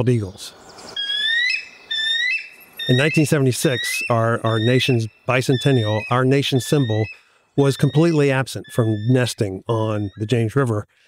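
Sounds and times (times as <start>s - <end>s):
eagle calling: 0.3s - 10.7s
person speaking: 2.9s - 10.9s.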